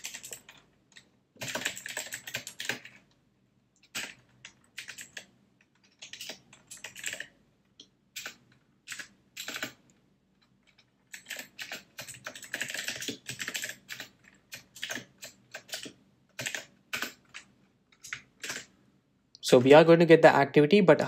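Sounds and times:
keyboard typing: 0.0s - 3.2s, 3.8s - 18.8s.

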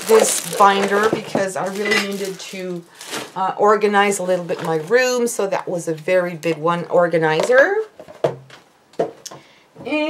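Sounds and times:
woman speaking: 0.0s - 7.9s, 9.8s - 10.0s.

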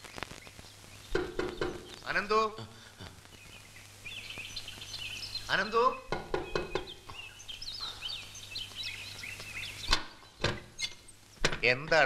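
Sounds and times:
small birds chirping: 0.0s - 12.0s
sharp knock: 1.1s - 1.9s, 6.1s - 7.0s.

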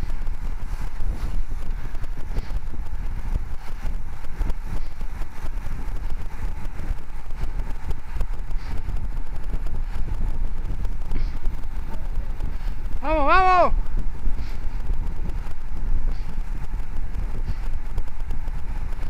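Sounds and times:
rattles from road vibration: 0.0s - 19.0s
wind buffeting microphone: 0.0s - 19.0s.

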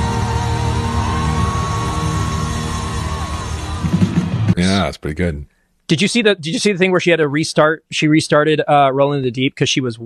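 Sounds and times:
live concert music sustained chord: 0.0s - 4.5s
crowd noise: 0.0s - 5.0s.

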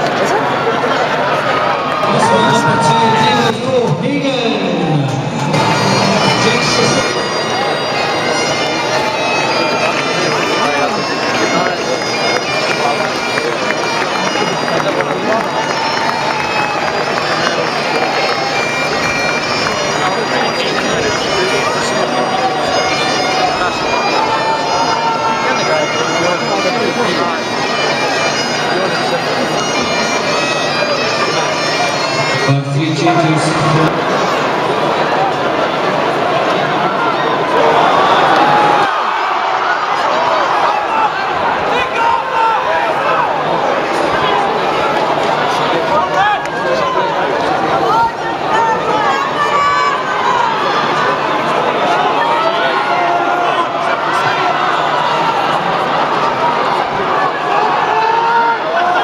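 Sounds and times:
bagpipe melody over drones: 0.0s - 39.1s, 39.8s - 59.0s.

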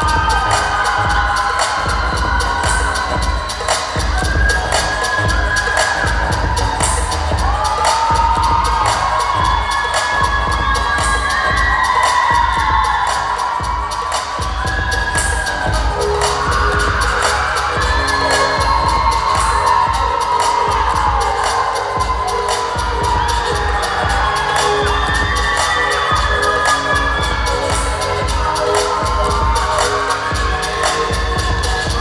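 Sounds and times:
hip-hop dance music over loudspeakers: 0.0s - 32.0s.

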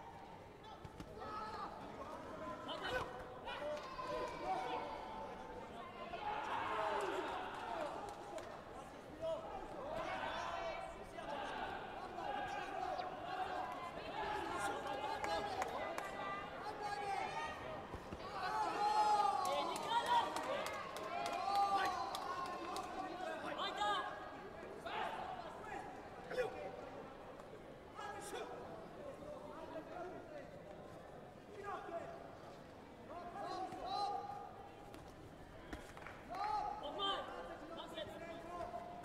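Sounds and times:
loud shouts: 18.2s - 22.6s.

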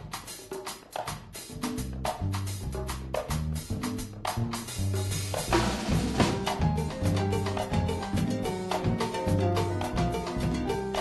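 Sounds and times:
salsa band rhythm section: 0.0s - 11.0s.

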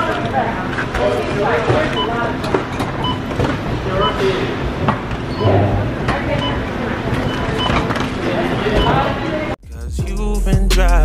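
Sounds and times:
people talking: 0.0s - 2.7s, 3.8s - 4.6s, 5.4s - 9.6s.

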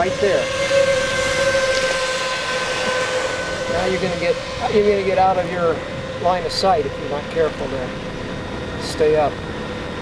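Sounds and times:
drone propellers whining: 0.0s - 10.0s.

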